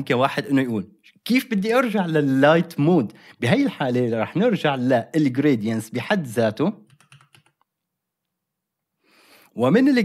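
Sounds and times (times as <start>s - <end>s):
computer keyboard keystrokes: 6.8s - 7.7s.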